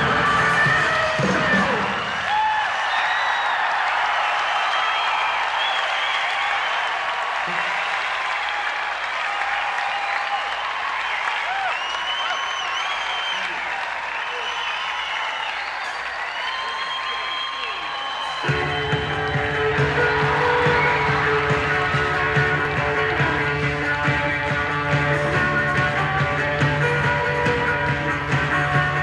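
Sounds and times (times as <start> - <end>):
audience shouts: 0.0 - 24.0
audience cheering: 0.0 - 29.0
audience clapping: 0.0 - 29.0
whistles: 2.8 - 3.8, 4.4 - 7.0, 9.8 - 21.3.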